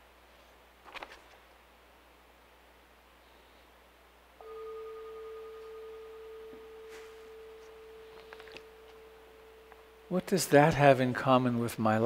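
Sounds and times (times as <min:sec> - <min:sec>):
meditation bell ringing: 0:04.4 - 0:11.1.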